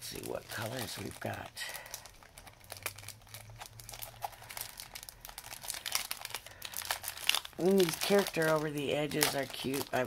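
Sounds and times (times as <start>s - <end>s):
packaging rustling and crinkling: 0.0s - 10.0s.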